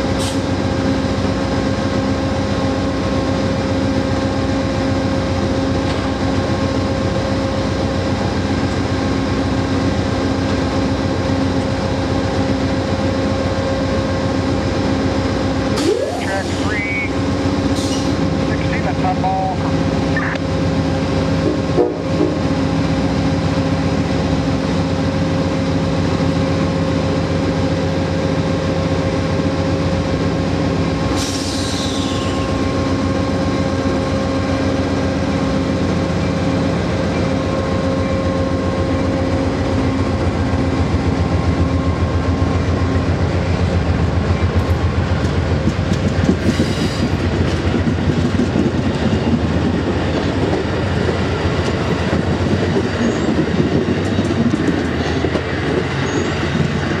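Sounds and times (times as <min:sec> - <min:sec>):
train wheels clicking over rail joints: 0:43.2 - 0:57.0.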